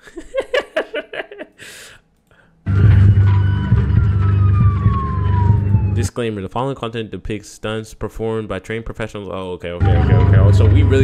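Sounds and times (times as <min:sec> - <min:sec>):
deep rumbling drone: 0:02.7 - 0:06.0, 0:09.8 - 0:11.0
siren-like tone sliding down: 0:02.7 - 0:06.1.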